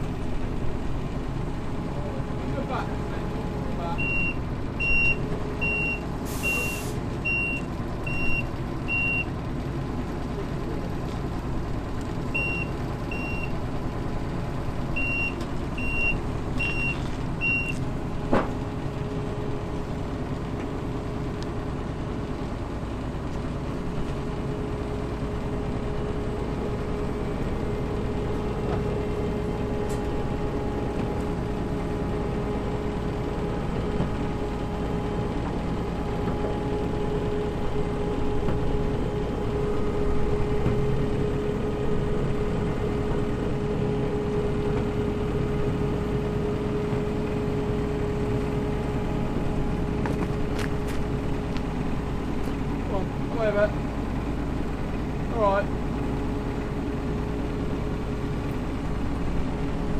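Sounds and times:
diesel engine running: 0.0 - 59.9.

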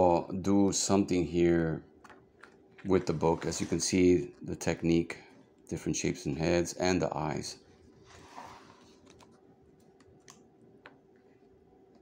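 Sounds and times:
low room hum: 0.0 - 12.0
book pages flipping: 7.7 - 11.0.

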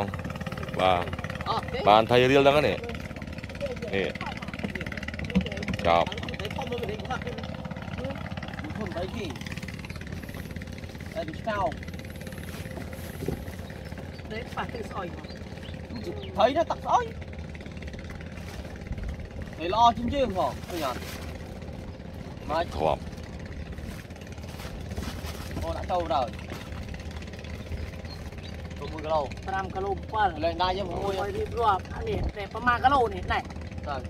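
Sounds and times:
voices: 0.0 - 24.3, 25.4 - 34.0
small boat engine running: 0.0 - 34.0.

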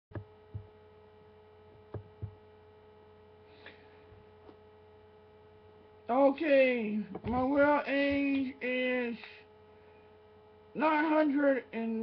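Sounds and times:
faint electrical hum: 0.1 - 12.0.

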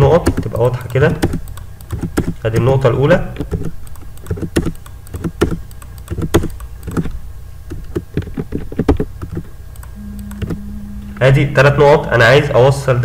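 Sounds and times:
mouse and keyboard clicks: 0.2 - 2.7, 3.4 - 10.0
low steady hum: 9.6 - 13.0.

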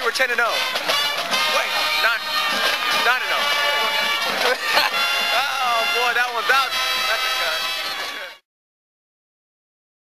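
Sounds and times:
background music: 0.0 - 8.4
voices talking: 0.0 - 8.4.

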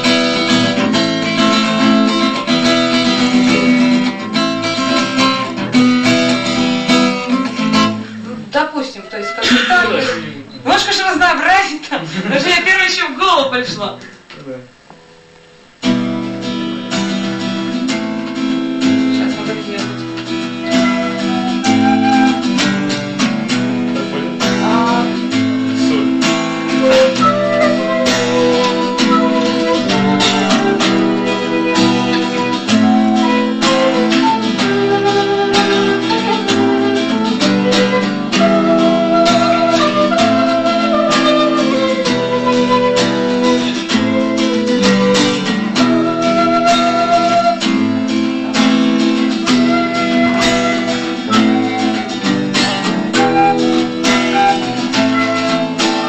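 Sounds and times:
flute melody: 0.0 - 8.2, 8.8 - 10.3, 15.8 - 56.0
acoustic guitar chords: 0.0 - 11.4, 13.7 - 56.0.

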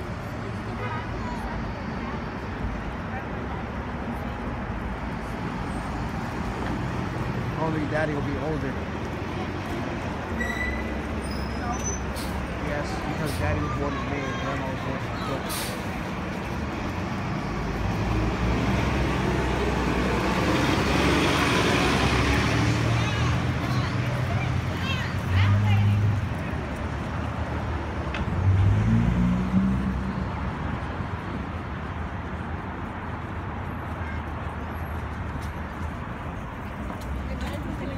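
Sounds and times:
city bus engine and road noise: 0.0 - 37.9
street traffic: 0.0 - 37.9
bus engine running: 14.6 - 27.6.

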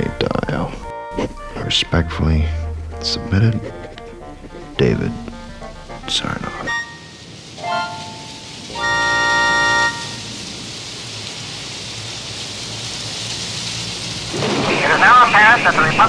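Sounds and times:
radio static hiss: 2.6 - 8.9, 14.3 - 16.0
radio whistle: 6.6 - 10.2
voice on radio: 14.7 - 16.0.

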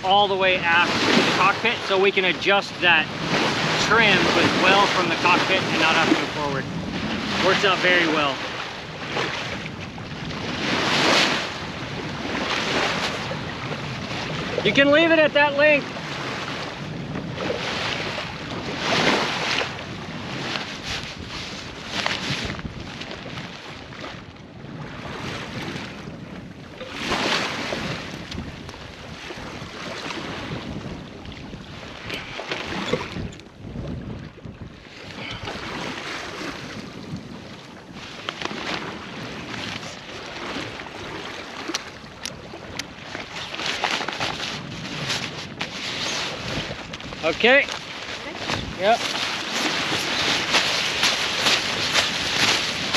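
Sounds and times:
water rushing along boat hull: 0.0 - 52.9
wind buffeting microphone: 0.0 - 52.9.

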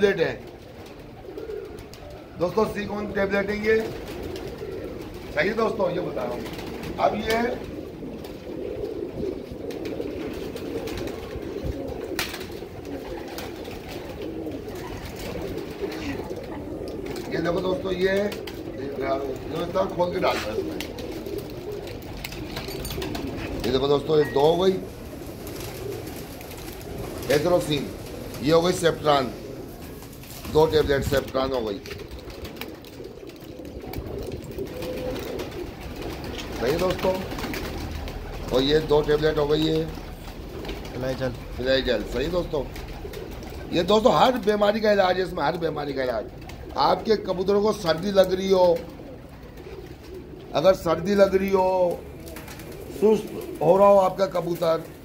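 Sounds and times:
pigeons cooing: 0.0 - 55.0.

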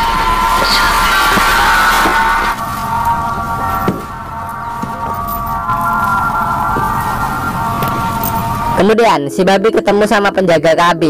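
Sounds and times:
low rumble: 0.0 - 8.9
droning film music chord: 0.0 - 10.8.

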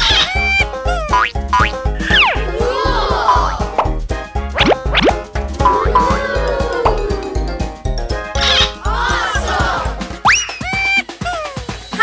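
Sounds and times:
upbeat children's music: 0.0 - 12.0.

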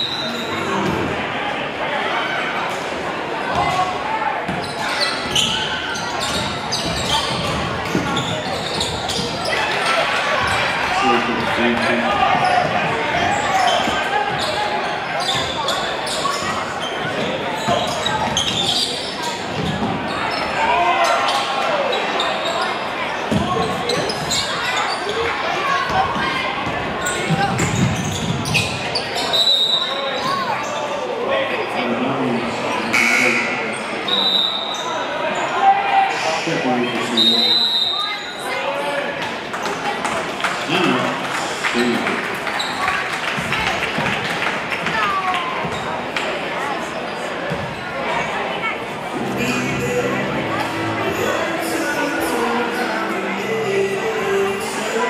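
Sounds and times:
crowd talking and calling out: 0.0 - 55.0.

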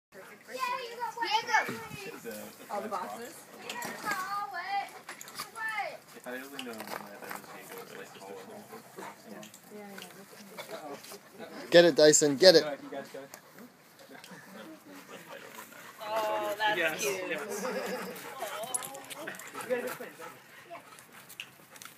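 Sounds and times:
dogs playing: 0.2 - 21.9
child talking: 0.5 - 2.2, 3.6 - 6.0.

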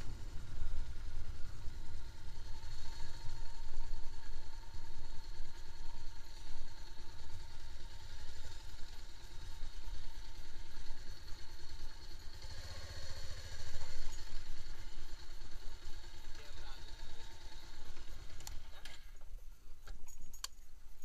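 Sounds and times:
motorcycle engine running slowly: 0.0 - 21.0.

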